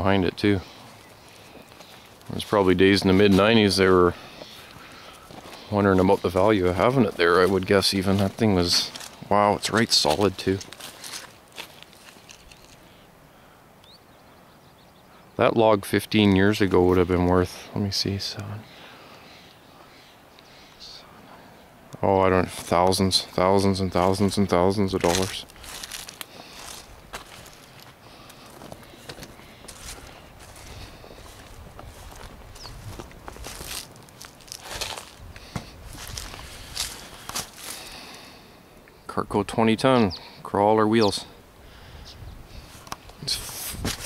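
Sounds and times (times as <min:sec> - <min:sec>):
footsteps on grass: 0:00.0 - 0:12.9, 0:22.3 - 0:38.4, 0:42.6 - 0:44.0.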